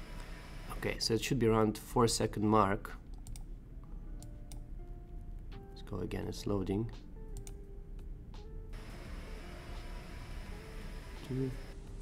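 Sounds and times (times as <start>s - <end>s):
steady hiss of background noise: 0.0s - 3.1s, 7.0s - 12.0s
quiet background music: 0.0s - 12.0s.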